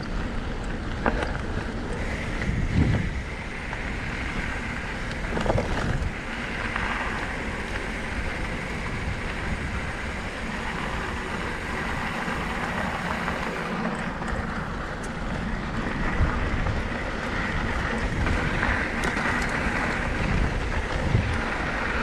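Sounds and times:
tyres rolling over dirt: 0.0s - 22.0s
wind on microphone: 1.2s - 22.0s.

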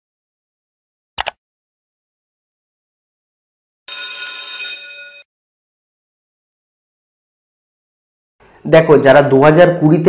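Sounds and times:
bell ringing: 3.9s - 5.3s.

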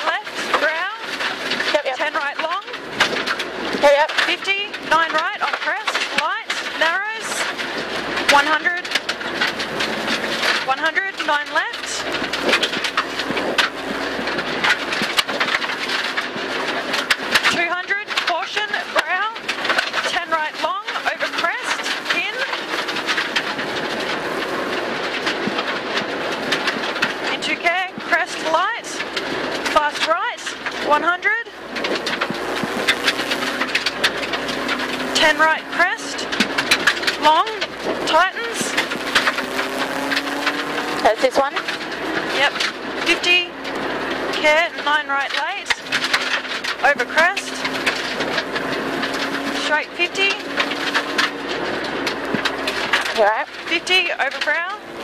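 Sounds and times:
gravel clicks and knocks: 0.0s - 55.0s
road noise: 0.0s - 55.0s
car engine revving hard: 5.9s - 54.0s.

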